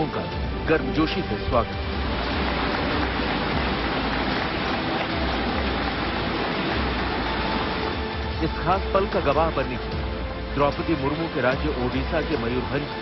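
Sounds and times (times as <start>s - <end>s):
audience applauding: 1.9s - 8.4s.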